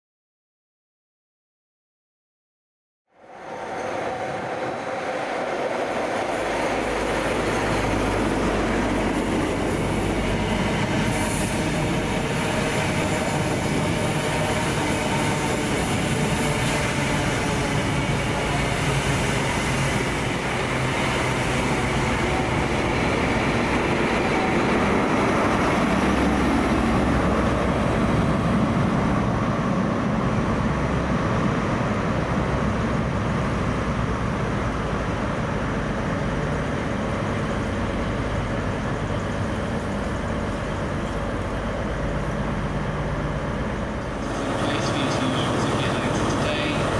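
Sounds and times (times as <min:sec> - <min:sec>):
diesel train engines running: 0:03.2 - 0:46.9.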